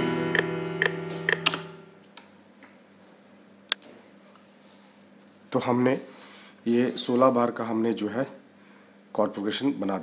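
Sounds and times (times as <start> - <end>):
metronome ticks: 0.3 - 1.6.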